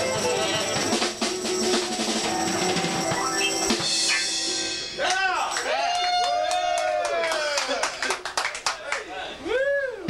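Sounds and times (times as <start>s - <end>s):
people clapping: 5.0s - 9.1s.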